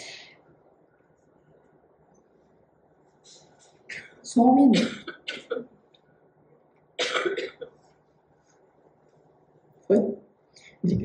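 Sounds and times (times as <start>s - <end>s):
faint room hiss: 0.0s - 11.0s
throat-clearing cough: 4.8s - 5.6s, 7.0s - 7.8s.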